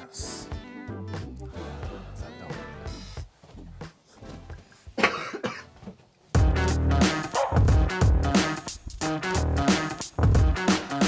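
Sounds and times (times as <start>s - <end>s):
person coughing: 5.0s - 5.8s
loud music with heavy bass: 6.4s - 11.0s.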